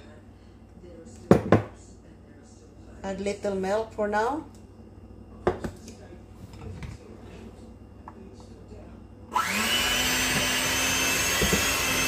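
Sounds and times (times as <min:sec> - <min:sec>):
sharp knock on countertop: 0:01.3 - 0:01.7.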